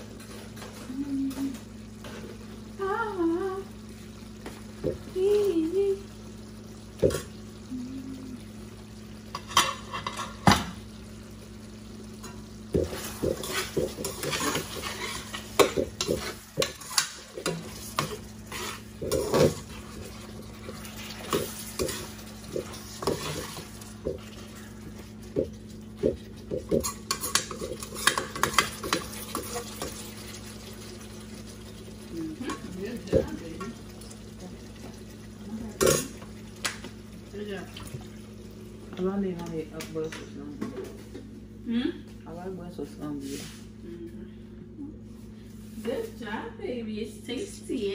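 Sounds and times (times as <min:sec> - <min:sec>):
faint sizzle: 0:00.0 - 0:47.9
steady low hum: 0:00.0 - 0:47.9
metal spoon scraping a pan: 0:09.3 - 0:10.4, 0:12.8 - 0:20.0, 0:20.6 - 0:23.8, 0:26.7 - 0:30.0.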